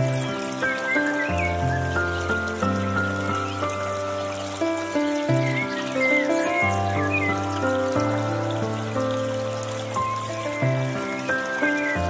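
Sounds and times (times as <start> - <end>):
slow piano music: 0.0 - 12.0
water fountain trickling: 0.0 - 12.0.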